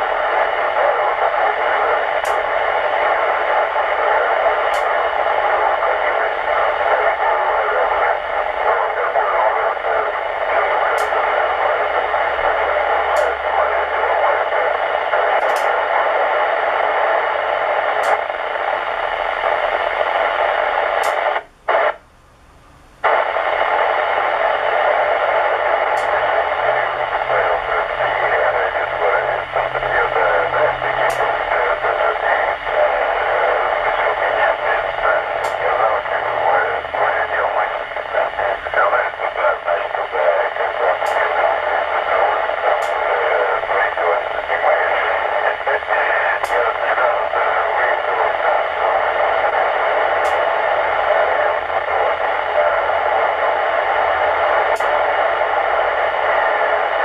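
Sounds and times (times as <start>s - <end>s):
faint voice on radio: 0.0s - 22.0s, 23.0s - 57.0s
radio hiss: 0.0s - 22.0s, 23.0s - 57.0s.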